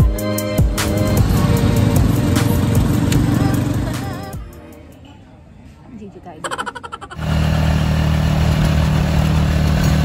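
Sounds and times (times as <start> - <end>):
background music: 0.0 - 6.8
motorcycle engine rumbling: 0.8 - 4.4.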